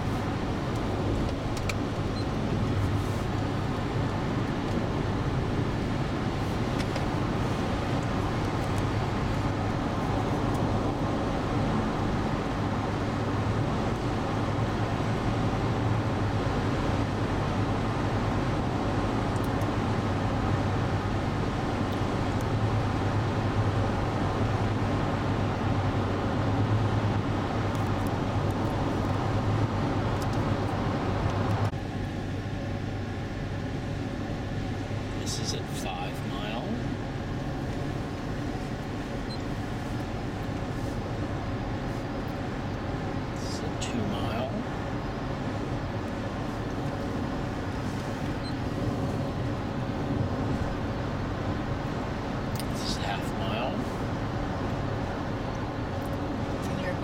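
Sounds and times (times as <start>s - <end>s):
highway road noise in car cabin: 0.0s - 57.0s.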